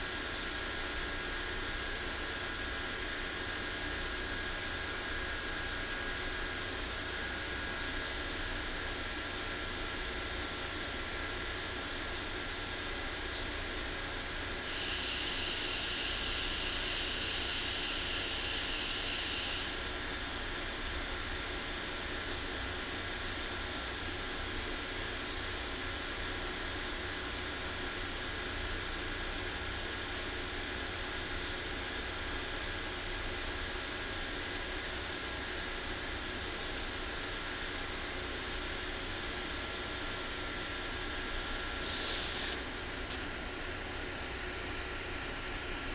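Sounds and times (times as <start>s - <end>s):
steady background hiss: 0.0s - 45.9s
bright high hiss: 14.6s - 19.8s, 41.8s - 43.8s.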